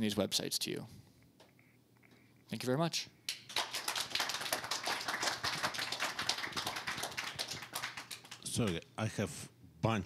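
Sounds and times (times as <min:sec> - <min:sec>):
audience applauding: 0:03.5 - 0:08.8.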